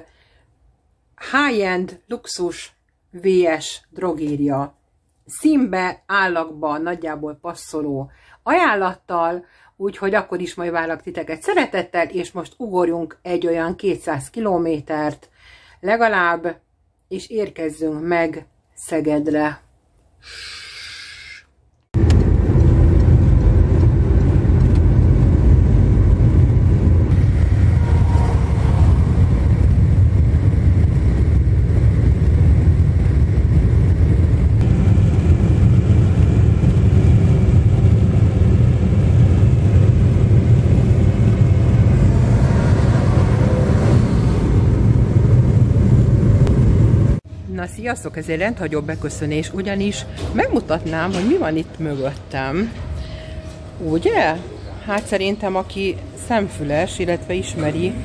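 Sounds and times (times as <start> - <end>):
car driving at speed: 22.0 - 32.3, 39.4 - 47.2.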